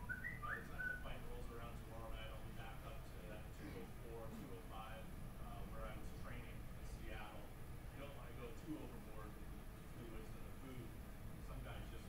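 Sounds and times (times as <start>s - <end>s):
whistle-like tones: 0.0s - 1.0s.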